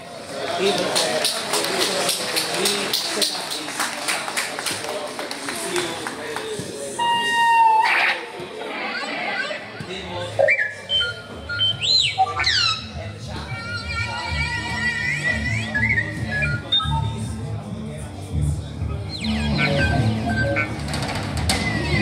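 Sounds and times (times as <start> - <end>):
sustained bass and keyboard notes: 7.0 - 8.3, 10.0 - 22.0
high swooping pitch bends: 10.2 - 14.2
rock fusion band playing: 19.1 - 22.0.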